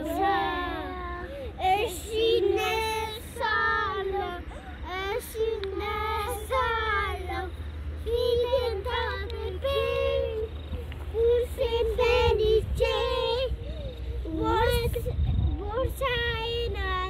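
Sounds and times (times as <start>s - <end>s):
young children singing: 0.0s - 13.6s.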